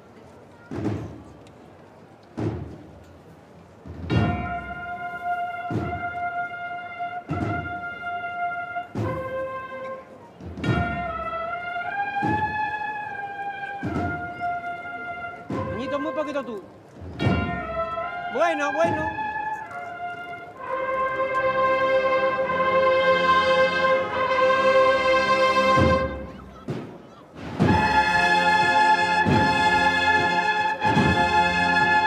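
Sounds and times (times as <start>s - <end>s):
brass melody: 4.1s - 26.5s, 27.4s - 32.0s.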